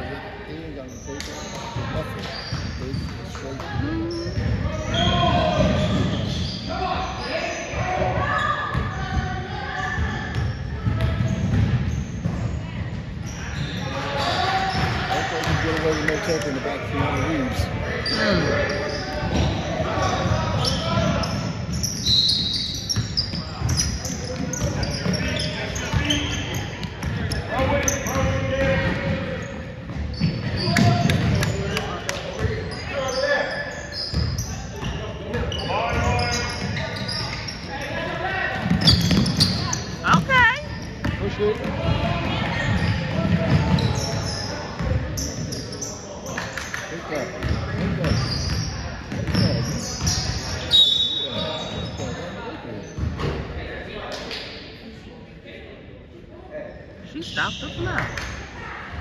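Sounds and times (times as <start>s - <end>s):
sneakers squeaking: 0.5s - 53.6s, 56.7s - 59.0s.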